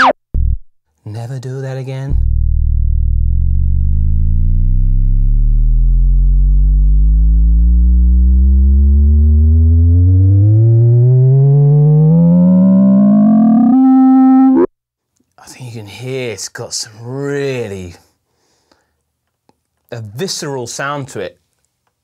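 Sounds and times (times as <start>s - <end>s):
resonant synth tone sweeping upward: 5.9s - 14.7s
bright buzzy synth note: 7.2s - 14.7s.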